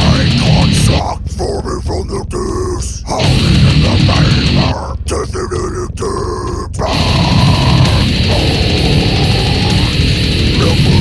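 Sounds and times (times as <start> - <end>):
guttural growled vocals: 0.0 - 11.0.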